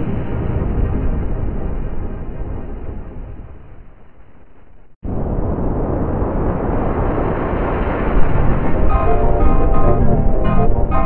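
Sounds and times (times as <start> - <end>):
heavily distorted noisy rumble: 5.0 - 11.0.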